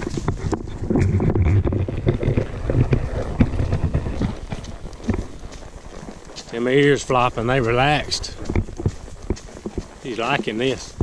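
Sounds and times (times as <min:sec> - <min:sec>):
hooves stepping through dry leaves: 0:00.0 - 0:11.0
wind buffeting microphone: 0:00.0 - 0:11.0.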